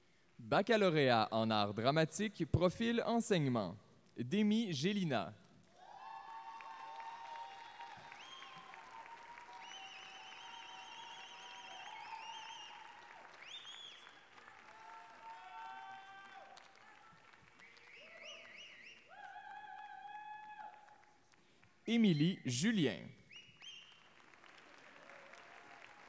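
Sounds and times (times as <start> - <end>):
audience applause: 5.7 - 21.2, 23.9 - 26.0.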